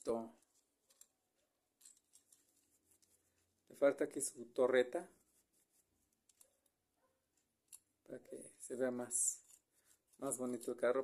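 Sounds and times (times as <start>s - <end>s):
faint ticks of toy handling: 0.4s - 3.8s, 6.0s - 8.0s.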